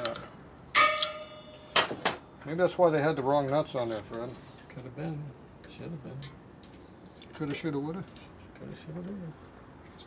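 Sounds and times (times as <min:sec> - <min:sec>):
metal tool clinking on metal: 0:00.0 - 0:01.8.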